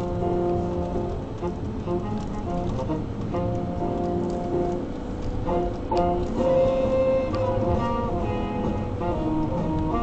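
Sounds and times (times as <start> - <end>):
music from car radio: 0.0 - 10.0
road and engine rumble: 0.0 - 10.0.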